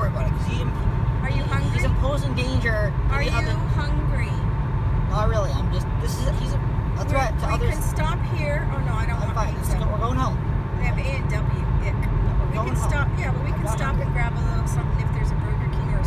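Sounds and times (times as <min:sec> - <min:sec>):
car road and engine rumble: 0:00.0 - 0:16.0
voices talking: 0:00.0 - 0:16.0.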